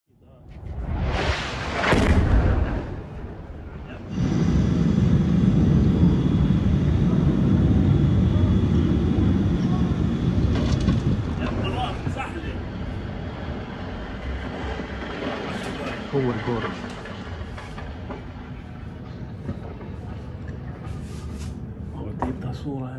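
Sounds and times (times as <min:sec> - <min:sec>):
heavy low rumble: 0:00.2 - 0:22.9
explosions: 0:00.5 - 0:08.5.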